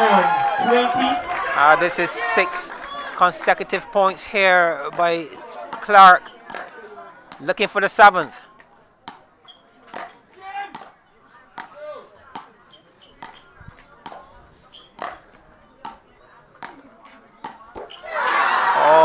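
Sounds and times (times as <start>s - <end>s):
crowd cheering burst: 0.0s - 3.6s, 18.0s - 19.0s
faint crowd voices: 0.0s - 19.0s
ball bouncing on pavement: 4.8s - 7.5s, 8.6s - 16.8s, 17.4s - 18.0s
ball struck with wooden paddles: 9.0s - 9.2s, 9.9s - 11.0s, 15.0s - 15.2s, 17.4s - 17.9s.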